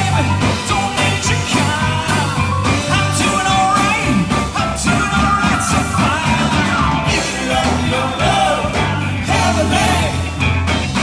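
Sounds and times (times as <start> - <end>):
lead singer singing: 0.0 - 10.5
live rock band playing: 0.0 - 11.0.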